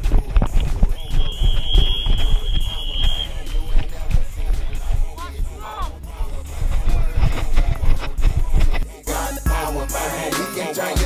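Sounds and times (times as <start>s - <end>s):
body-worn mic rumble and thumps: 0.0s - 8.9s
background music: 0.0s - 11.0s
referee's whistle blast: 0.9s - 3.9s.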